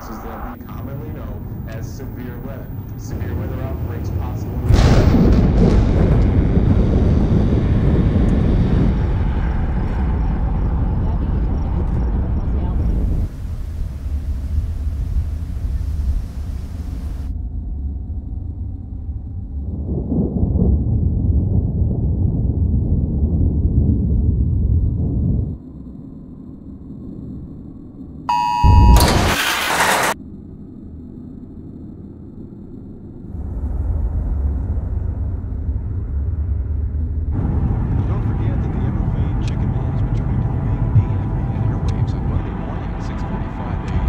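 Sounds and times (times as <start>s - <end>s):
rushing storm noise: 0.0s - 17.9s, 18.6s - 25.6s, 33.3s - 44.0s
loud low rumble: 0.0s - 25.7s, 32.4s - 44.0s
deep boom: 3.9s - 10.9s, 33.4s - 43.0s
two-tone electronic alert: 28.3s - 29.4s.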